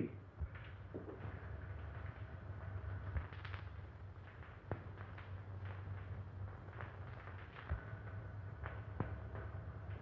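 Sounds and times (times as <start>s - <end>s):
old film soundtrack hum and crackle: 0.0s - 10.0s.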